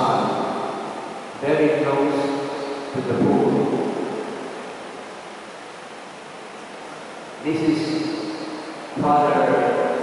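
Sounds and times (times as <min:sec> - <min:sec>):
loud rush of noise: 0:00.0 - 0:10.0.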